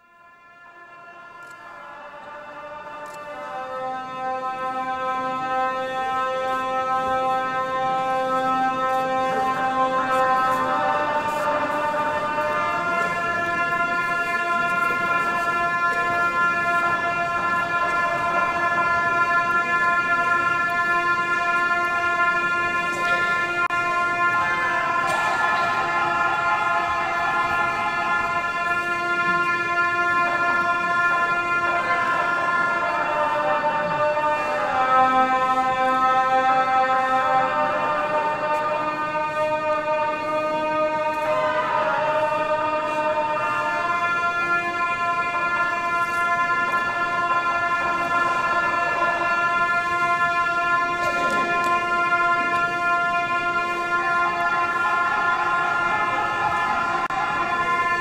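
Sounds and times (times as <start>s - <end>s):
ceremonial horns playing long notes: 0.0s - 58.0s.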